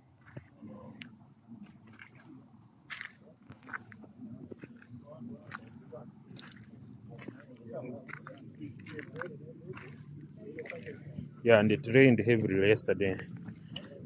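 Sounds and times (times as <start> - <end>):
footsteps crunching on gritty ground: 0.0 - 11.4
murmur of voices: 0.2 - 14.0.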